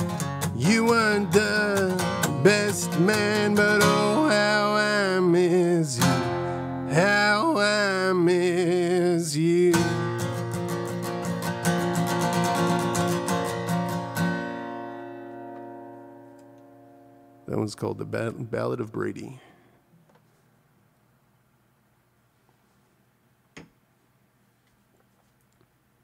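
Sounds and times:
strummed acoustic guitar: 0:00.0 - 0:18.7
man singing: 0:00.4 - 0:10.2.

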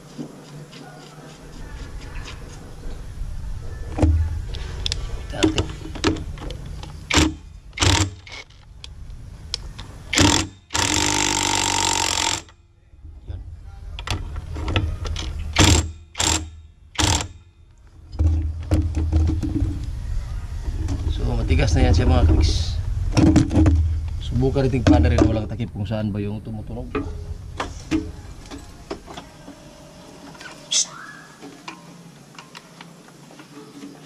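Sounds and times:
metal parts clicking and knocking: 0:05.4 - 0:08.7, 0:09.8 - 0:12.6, 0:14.0 - 0:17.4
impact wrench hammering: 0:07.1 - 0:08.4, 0:10.1 - 0:12.6, 0:15.5 - 0:17.5.

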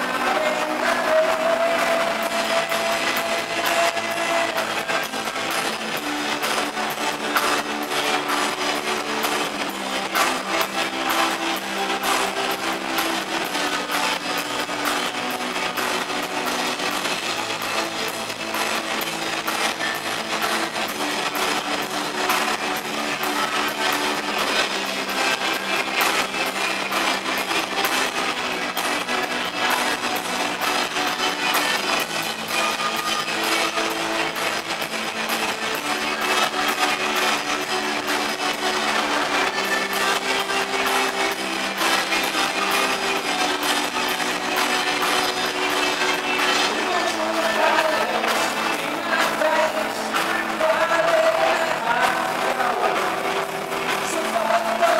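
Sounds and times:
distorted electric guitar: 0:00.0 - 0:54.9
drums: 0:00.0 - 0:54.9.

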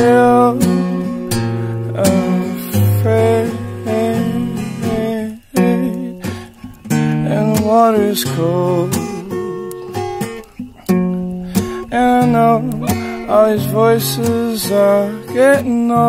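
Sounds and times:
acoustic guitar strumming chords: 0:00.0 - 0:16.0.

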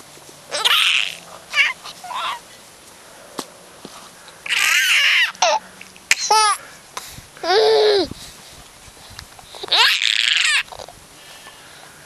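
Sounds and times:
baby squealing and laughing: 0:00.5 - 0:02.5, 0:04.4 - 0:06.6, 0:07.4 - 0:08.2, 0:09.6 - 0:10.9.

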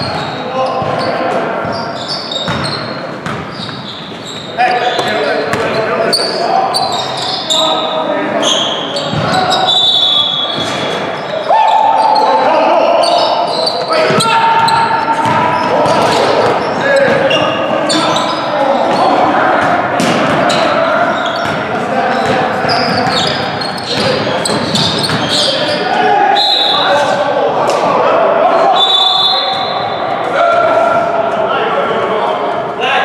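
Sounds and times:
sneaker squeaks: 0:00.0 - 0:27.2, 0:28.7 - 0:30.0
players calling out: 0:00.0 - 0:32.9
basketball bouncing on hardwood: 0:15.2 - 0:16.2.

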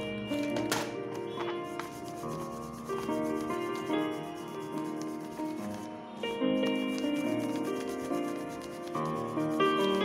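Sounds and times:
instrumental music: 0:00.0 - 0:10.0
pencil rubbing on paper: 0:01.7 - 0:10.0.

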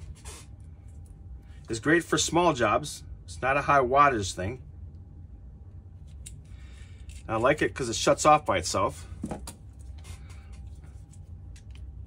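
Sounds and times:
steady low hum: 0:00.0 - 0:12.0
faint handling sounds: 0:09.1 - 0:12.0.

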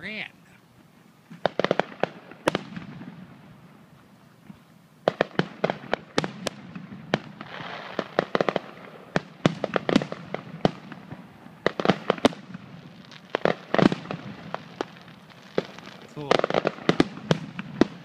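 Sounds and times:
fireworks bursting with sharp bangs: 0:00.0 - 0:18.0.

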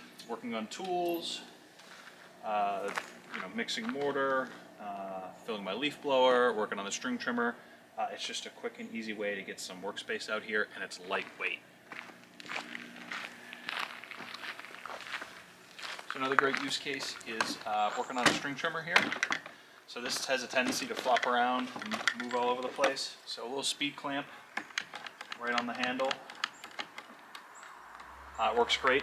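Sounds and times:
footsteps crunching on gravel: 0:01.7 - 0:04.7, 0:10.9 - 0:18.6, 0:20.0 - 0:23.1.

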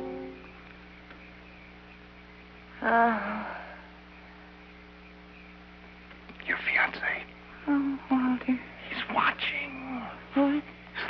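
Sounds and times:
steady electrical hum: 0:00.0 - 0:11.0
breathy whisper: 0:06.4 - 0:08.0.

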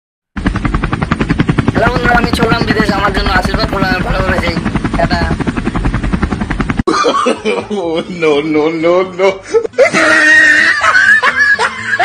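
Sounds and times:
helicopter rotor chop: 0:00.4 - 0:06.9
person speaking: 0:01.7 - 0:05.5.

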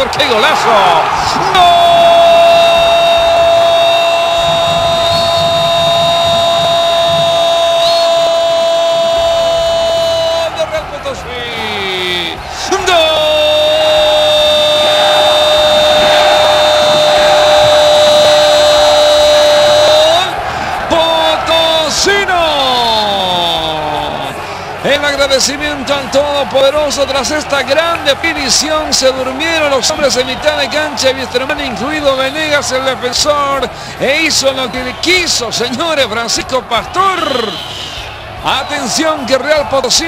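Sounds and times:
commentator's drawn-out goal shout: 0:00.0 - 0:40.0.

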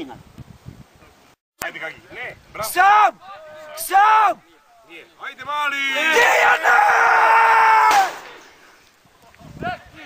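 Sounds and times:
elderly man screaming: 0:06.0 - 0:08.1.

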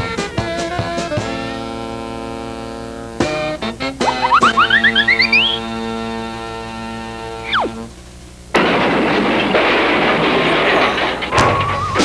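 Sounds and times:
rising cartoon chirps: 0:04.0 - 0:05.9, 0:07.4 - 0:07.9
held music tone: 0:04.0 - 0:06.0.

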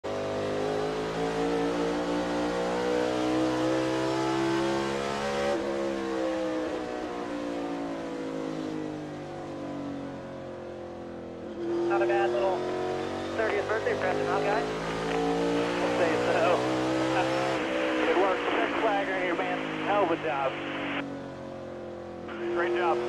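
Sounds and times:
race car engine at speed: 0:00.0 - 0:23.0.

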